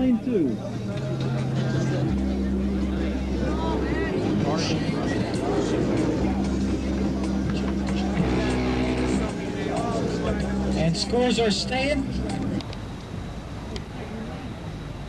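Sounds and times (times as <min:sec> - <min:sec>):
crowd voices: 0:00.0 - 0:15.0
loud bass tones from car audio: 0:01.9 - 0:12.6.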